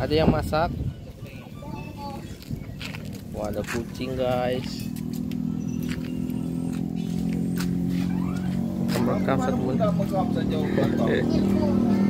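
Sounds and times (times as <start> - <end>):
engine humming: 1.0 - 12.0.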